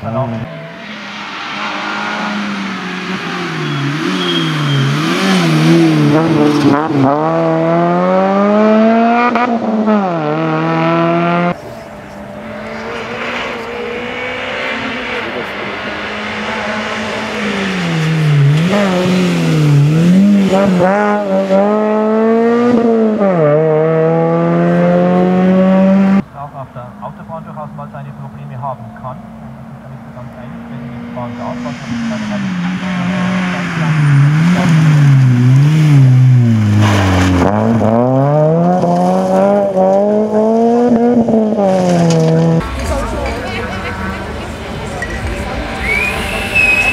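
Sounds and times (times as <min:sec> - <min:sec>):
rally car engine revving hard: 0:00.4 - 0:11.6, 0:12.3 - 0:26.2, 0:30.8 - 0:42.9.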